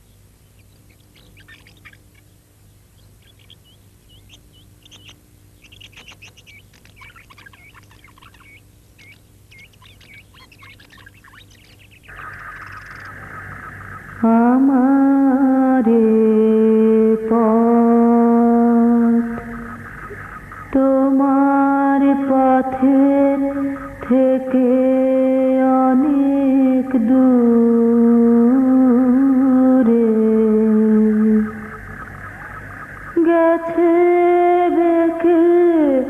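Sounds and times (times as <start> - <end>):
faint bird chirping: 0.0 - 36.0
background music drone: 12.1 - 26.5.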